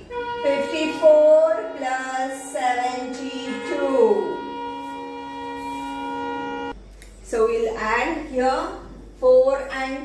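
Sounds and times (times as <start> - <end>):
steady pitched tone: 0.0 - 8.4.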